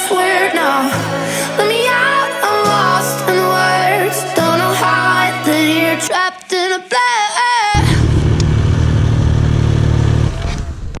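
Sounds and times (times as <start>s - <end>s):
pop song vocals: 0.0s - 8.2s
snowmobile engine running: 7.8s - 11.0s.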